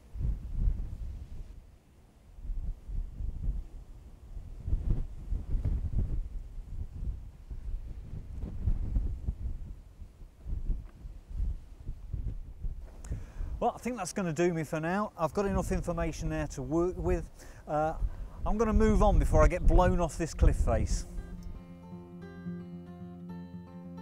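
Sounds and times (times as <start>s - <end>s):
wind buffeting microphone: 0.0s - 14.0s, 15.3s - 21.6s.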